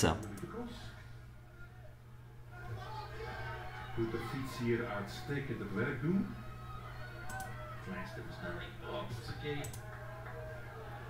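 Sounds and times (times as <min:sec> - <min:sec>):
light clicks: 0:07.3 - 0:07.5.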